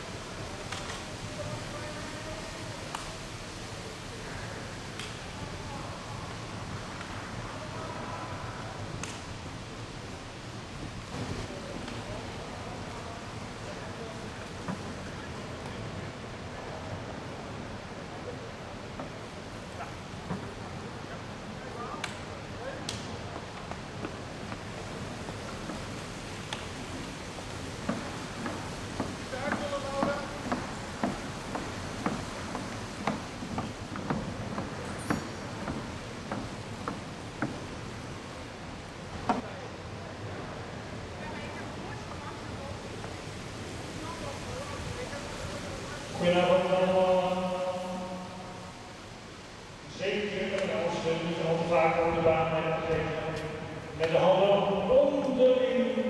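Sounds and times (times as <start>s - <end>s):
steady background hum: 0.0s - 56.0s
indistinct talking: 11.4s - 49.1s.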